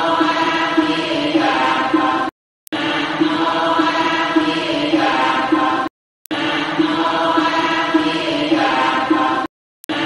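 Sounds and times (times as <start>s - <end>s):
voices chanting in a drone: 0.0s - 10.0s.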